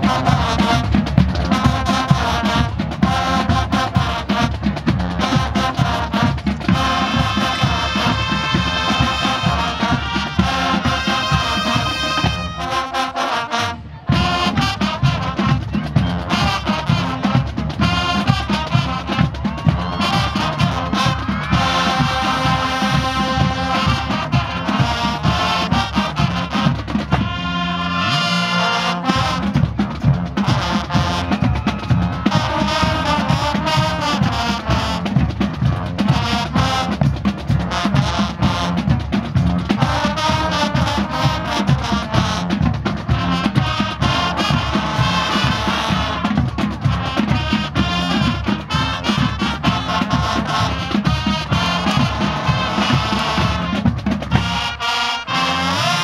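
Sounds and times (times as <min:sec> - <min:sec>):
brass section playing: 0:00.0 - 0:56.0
drumline steady beat: 0:00.0 - 0:56.0.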